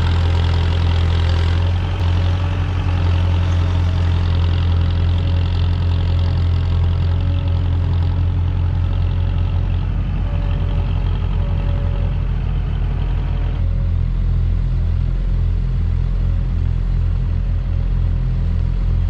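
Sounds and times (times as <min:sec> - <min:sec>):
tractor engine running: 0:00.0 - 0:19.0.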